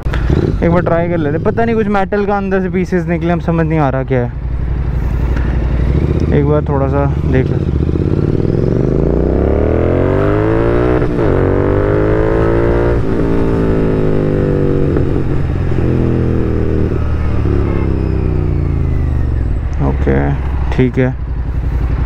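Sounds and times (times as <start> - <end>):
motorcycle engine and exhaust: 0.0 - 22.0.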